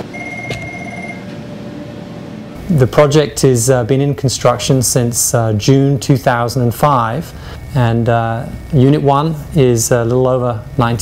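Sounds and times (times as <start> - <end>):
high electronic tone: 0.0 - 1.3
equipment hum: 0.0 - 11.0.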